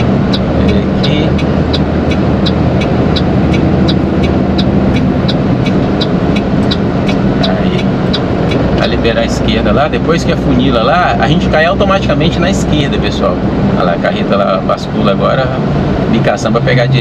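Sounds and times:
diesel truck engine running: 0.0s - 17.0s
turn signal ticking: 0.0s - 17.0s.

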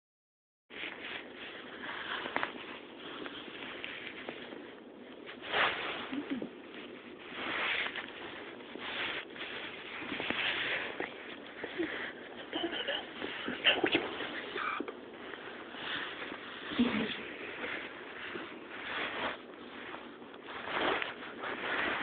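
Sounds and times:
rustling on couch fabric: 0.7s - 22.0s.

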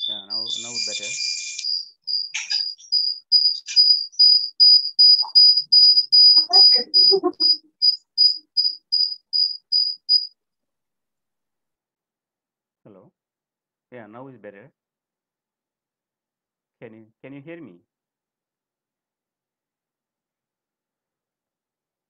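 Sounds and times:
cricket chirping: 0.0s - 10.3s.

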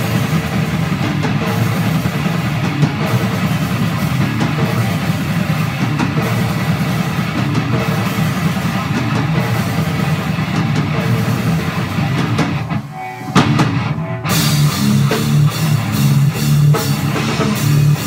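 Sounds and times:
death metal drums and guitar: 0.0s - 18.0s.

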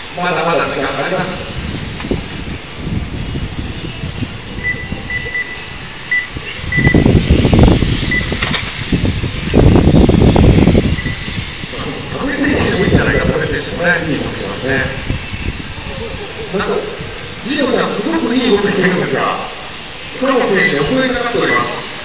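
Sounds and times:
voices: 0.0s - 9.8s, 10.5s - 22.0s
electric toy car motors whining: 0.0s - 22.0s.

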